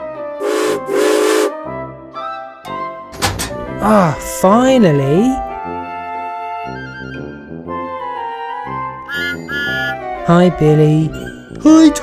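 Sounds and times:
light background music: 0:00.0 - 0:12.0
steam engine whistle: 0:00.4 - 0:01.6.

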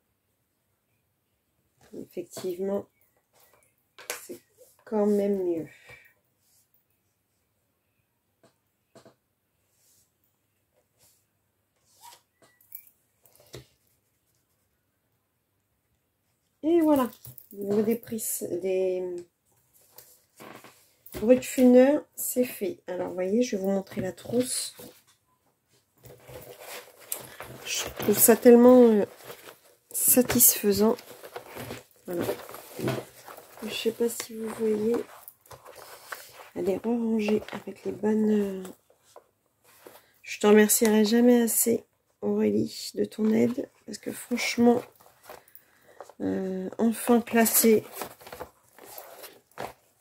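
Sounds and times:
fabric pencil case rustling: 0:19.7 - 0:25.1, 0:26.0 - 0:41.7, 0:43.1 - 0:50.0.

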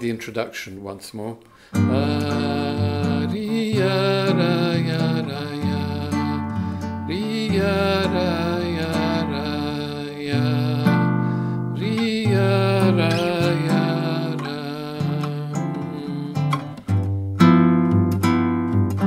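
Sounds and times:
classical guitar plucked chords: 0:01.8 - 0:19.0.

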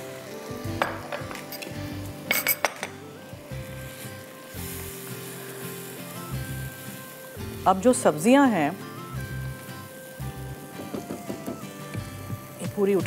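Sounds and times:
light sizzle: 0:00.0 - 0:13.0
soft background music: 0:00.0 - 0:13.0.

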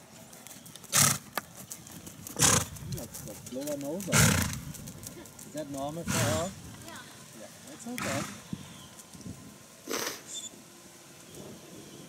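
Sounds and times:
faint hoof clicks: 0:00.0 - 0:06.0
horse snorting: 0:00.9 - 0:01.4, 0:02.3 - 0:03.3, 0:04.0 - 0:05.2, 0:06.0 - 0:06.6, 0:07.9 - 0:08.6, 0:09.8 - 0:10.4.

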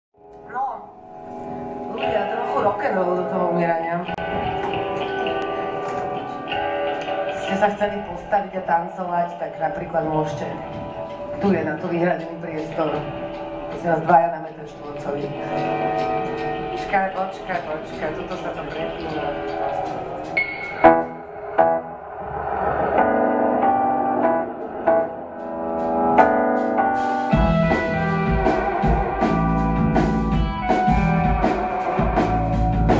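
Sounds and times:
electric guitar ringing notes: 0:00.3 - 0:32.9
live band music: 0:14.8 - 0:21.8, 0:24.3 - 0:32.9.

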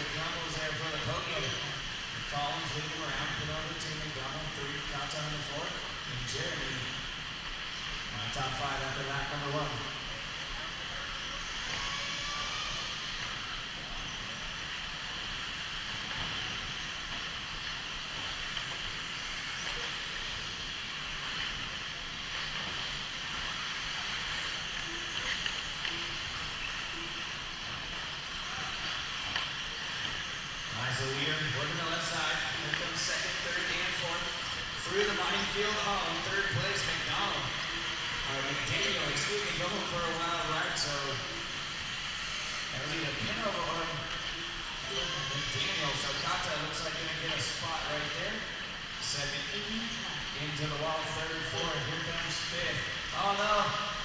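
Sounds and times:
high whine of electric motors: 0:00.0 - 0:54.0.

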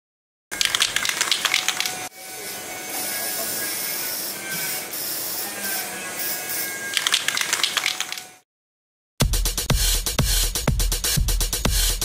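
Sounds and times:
static crackling: 0:00.5 - 0:02.1.

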